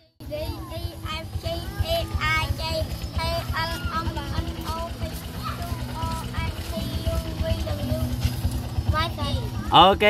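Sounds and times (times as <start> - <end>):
children calling out in sing-song: 0.2 - 8.3
steady low rumble: 0.2 - 9.7.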